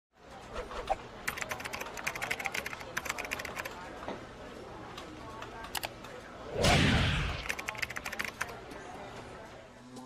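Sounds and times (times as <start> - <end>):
fast typing on keyboard: 1.2 - 3.8, 7.4 - 8.6.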